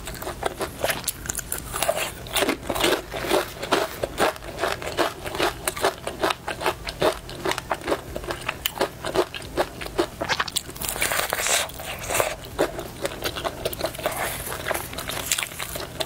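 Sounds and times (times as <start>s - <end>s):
crunchy chewing: 0.0s - 16.0s.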